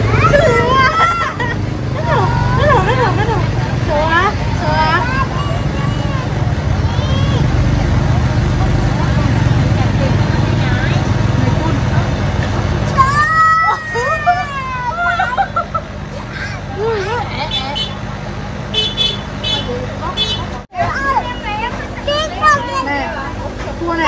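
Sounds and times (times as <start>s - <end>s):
voices and chatter: 0.0s - 24.0s.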